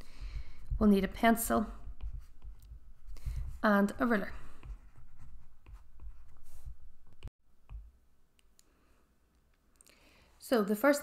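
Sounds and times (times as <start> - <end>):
low room rumble: 0.0 - 7.3.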